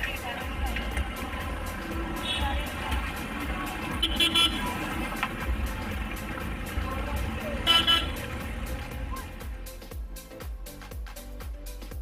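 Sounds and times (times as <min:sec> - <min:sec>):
rumble of slow cars: 0:00.0 - 0:09.9
music playing: 0:00.0 - 0:12.0
car horns honking: 0:02.0 - 0:05.6, 0:07.4 - 0:09.2.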